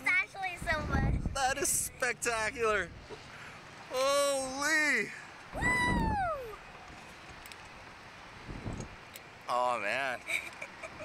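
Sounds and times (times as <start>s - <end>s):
wind rumble on microphone: 0.5s - 1.9s, 5.5s - 6.5s, 8.4s - 9.0s
person shouting woo: 5.5s - 6.6s.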